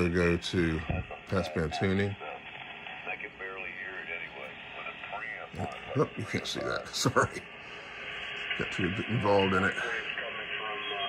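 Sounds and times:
thin radio voice through speaker: 0.0s - 7.2s.

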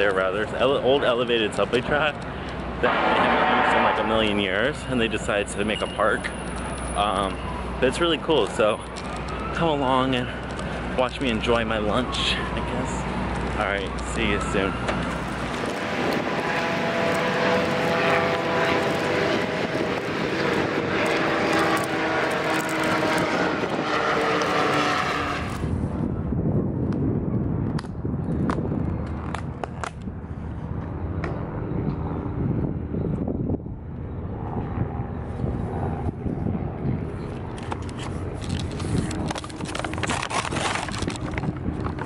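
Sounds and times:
loud mechanical drone: 0.5s - 9.8s, 10.4s - 42.0s
paper bag crinkling: 38.0s - 42.0s.

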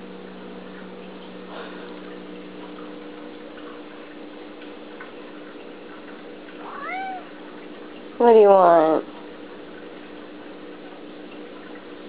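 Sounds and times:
cat meowing: 6.6s - 7.4s.

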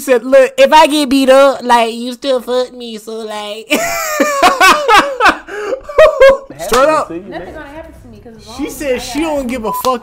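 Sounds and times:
hearty laughter: 3.7s - 6.5s.

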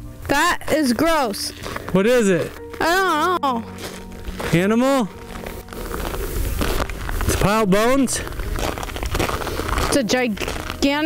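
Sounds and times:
faint background music: 0.0s - 11.0s
wind rumble on microphone: 5.7s - 10.8s.

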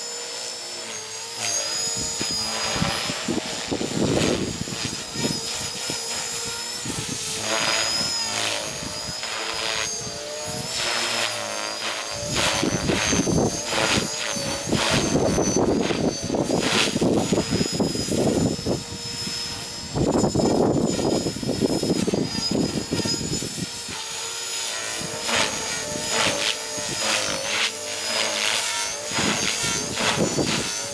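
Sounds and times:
radio-controlled helicopter whine: 0.0s - 30.9s.

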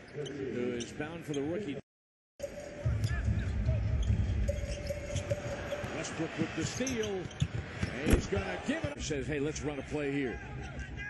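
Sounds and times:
arena crowd noise: 2.8s - 11.0s.

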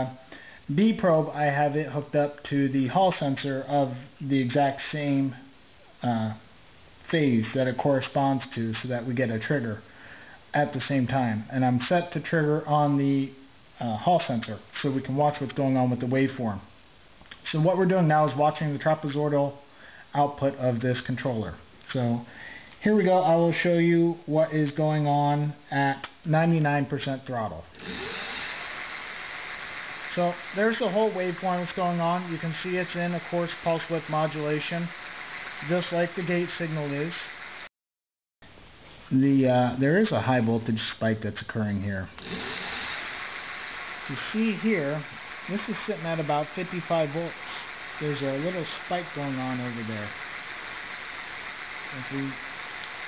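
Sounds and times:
electric motor wheel spinning hiss: 27.8s - 37.7s, 42.2s - 53.0s.

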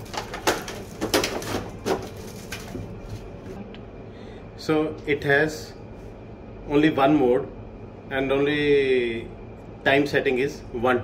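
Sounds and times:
plastic packaging crinkling: 0.0s - 3.5s.

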